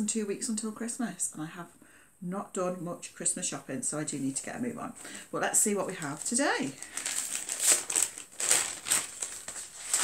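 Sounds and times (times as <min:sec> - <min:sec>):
paper wrapping crinkling: 0:06.0 - 0:10.0.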